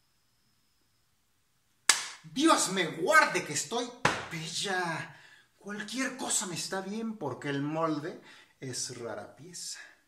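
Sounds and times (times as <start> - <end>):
faint high steady tone: 0.0 - 6.2
sharp smack: 1.9 - 2.2, 4.0 - 4.4.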